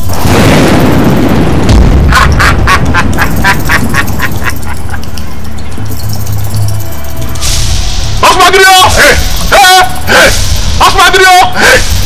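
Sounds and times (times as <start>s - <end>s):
loud dramatic hit: 0.1s - 4.5s, 7.4s - 12.0s.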